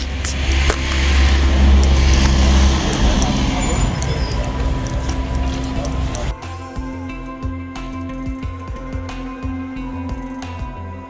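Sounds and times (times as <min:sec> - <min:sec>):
car passing: 0:00.0 - 0:06.3.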